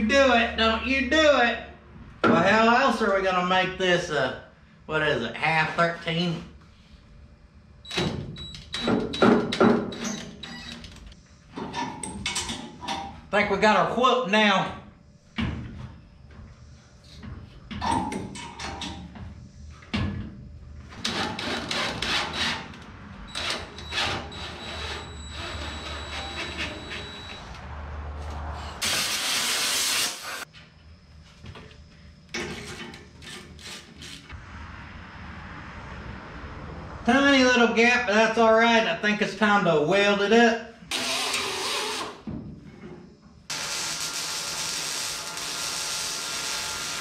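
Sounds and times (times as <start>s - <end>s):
cordless drill drilling: 40.9s - 42.2s.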